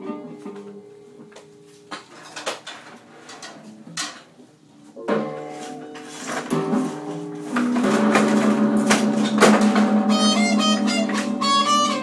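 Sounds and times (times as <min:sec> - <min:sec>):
electric guitar strumming chords: 0:05.0 - 0:12.0.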